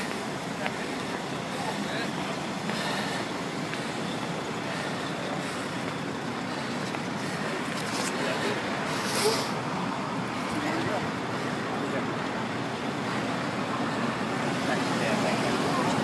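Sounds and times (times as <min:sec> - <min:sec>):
faint indistinct voices: 0:00.0 - 0:16.0
traffic hiss: 0:00.0 - 0:16.0.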